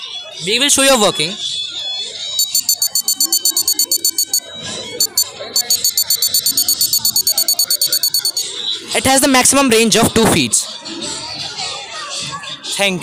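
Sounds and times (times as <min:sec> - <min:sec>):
rapid high-pitched buzzer beeps: 0:02.4 - 0:04.4, 0:05.0 - 0:08.4.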